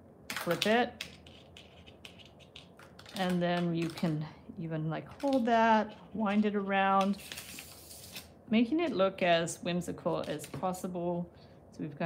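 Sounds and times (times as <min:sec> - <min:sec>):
wire and pliers handling noise: 0:05.1 - 0:06.4.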